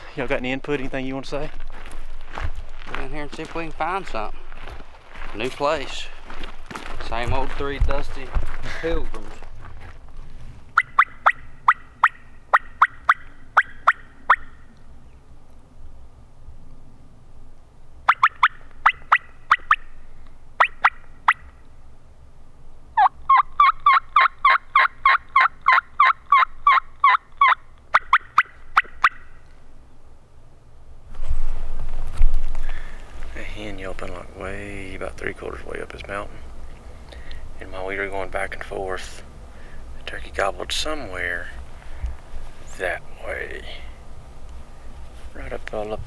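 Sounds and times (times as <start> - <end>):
turkey mouth call yelps: 10.7 - 14.8, 18.1 - 19.9, 20.6 - 21.6, 23.0 - 29.4.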